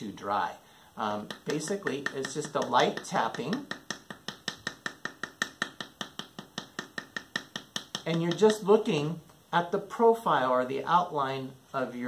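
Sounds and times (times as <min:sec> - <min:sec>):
wooden paddle tapping clay: 0:01.1 - 0:08.7.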